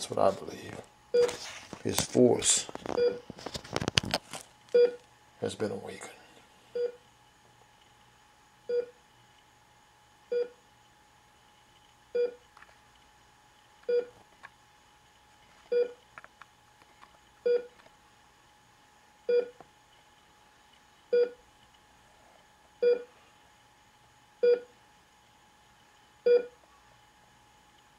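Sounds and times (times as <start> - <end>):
faint steady hum: 0.0 - 27.9
heart monitor beeps: 2.9 - 3.2, 4.8 - 5.0, 6.8 - 7.0, 15.7 - 16.0, 17.4 - 17.7, 19.3 - 19.6, 21.1 - 21.4, 22.8 - 23.1, 24.4 - 24.7, 26.3 - 26.5.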